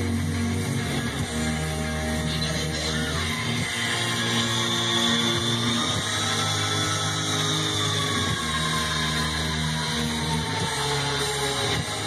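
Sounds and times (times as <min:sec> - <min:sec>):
distorted guitar and bass: 0:00.0 - 0:12.0
high guitar tone sliding down: 0:00.0 - 0:12.0.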